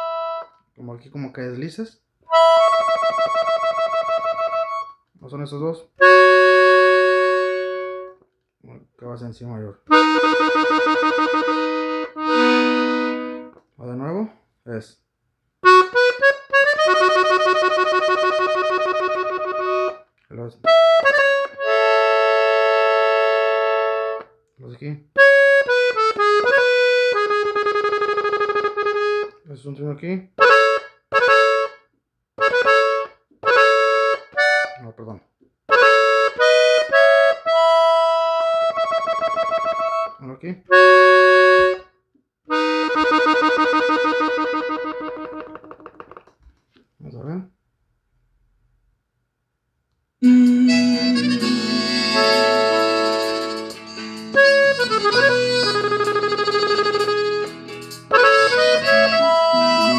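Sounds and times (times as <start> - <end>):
button accordion playing chords: 0.0 - 0.6, 2.3 - 5.0, 6.0 - 8.2, 9.9 - 13.6, 15.6 - 24.3, 25.2 - 29.4, 30.4 - 31.8, 32.4 - 34.8, 35.7 - 45.9, 50.2 - 59.9.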